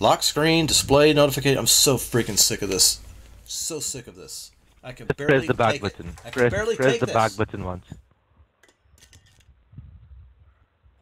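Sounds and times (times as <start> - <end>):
low hiss: 0.0 - 8.0.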